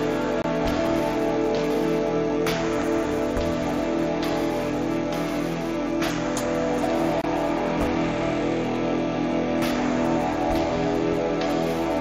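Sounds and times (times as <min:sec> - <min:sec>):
electric guitar drone: 0:00.0 - 0:12.0
scratchy guitar pick attack: 0:00.0 - 0:12.0.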